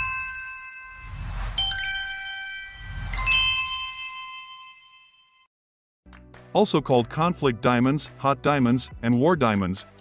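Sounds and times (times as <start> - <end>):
low whoosh: 0.0 - 3.9
bright bell-like chime: 0.0 - 5.5.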